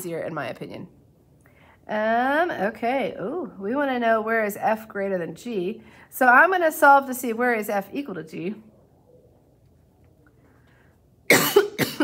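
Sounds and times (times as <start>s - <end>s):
woman coughing: 11.3s - 12.0s.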